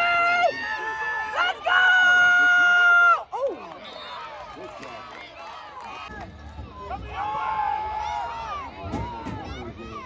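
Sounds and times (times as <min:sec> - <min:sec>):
crowd chatter: 0:03.2 - 0:10.0.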